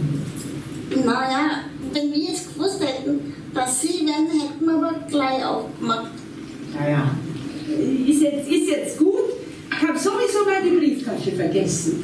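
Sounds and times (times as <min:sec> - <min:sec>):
low hummed murmur: 0:00.0 - 0:12.0
dialogue: 0:00.4 - 0:12.0.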